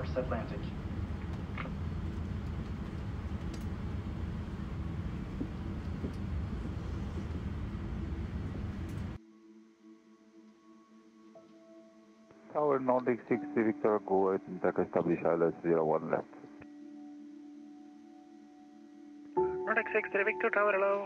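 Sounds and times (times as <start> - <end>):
faint hum: 0.0 - 9.2
rumbling cockpit cabin noise: 0.0 - 9.2.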